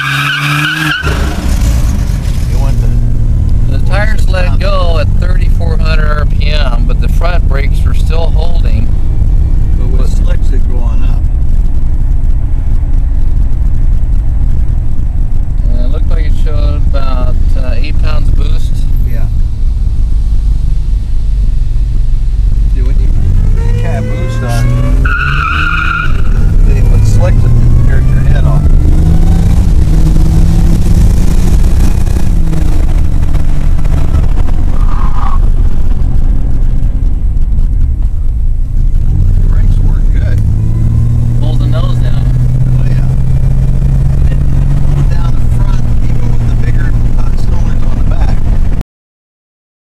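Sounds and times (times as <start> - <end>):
turbocharged engine accelerating: 0.0 - 48.8.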